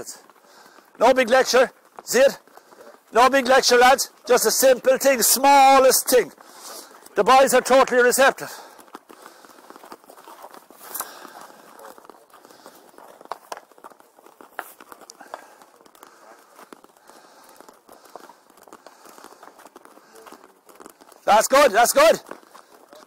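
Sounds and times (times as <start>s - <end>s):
footsteps on tarmac: 0.0s - 23.0s.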